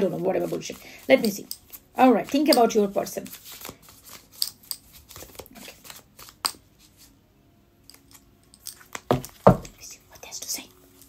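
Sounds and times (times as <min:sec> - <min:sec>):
cards being shuffled: 0:00.1 - 0:07.1
cards knocking together: 0:08.9 - 0:09.8.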